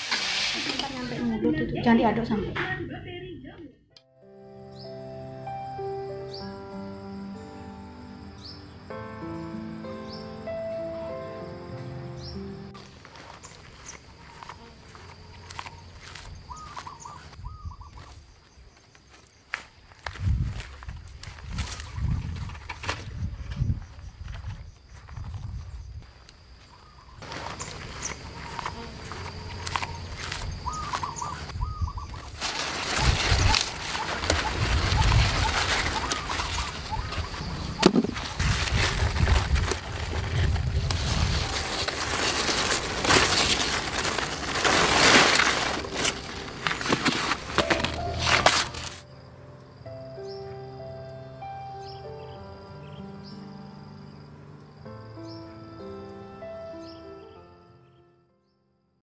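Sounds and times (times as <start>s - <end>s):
rustling of vines: 12.8s - 49.0s
bird chirps: 15.4s - 18.7s, 29.4s - 32.3s
wind buffeting microphone: 17.4s - 18.1s, 20.1s - 26.0s, 30.4s - 42.0s.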